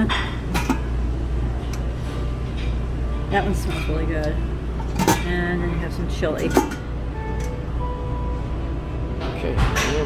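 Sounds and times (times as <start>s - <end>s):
steady low hum: 0.0s - 10.0s
metal lid clink: 0.1s - 0.9s, 4.8s - 5.3s, 6.4s - 7.6s.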